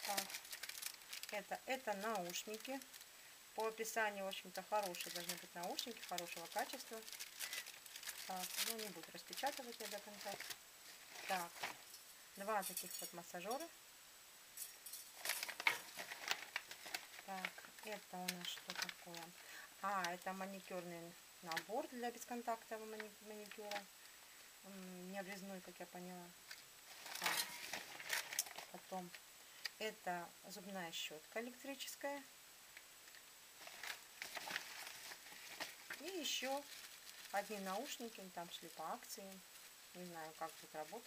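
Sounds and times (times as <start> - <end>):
plastic packaging crinkling: 0.0 - 13.1, 14.9 - 20.4, 26.5 - 29.2, 33.6 - 41.0.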